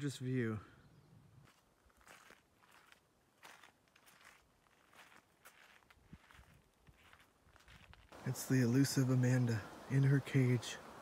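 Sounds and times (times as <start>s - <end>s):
faint footsteps: 1.4s - 8.4s.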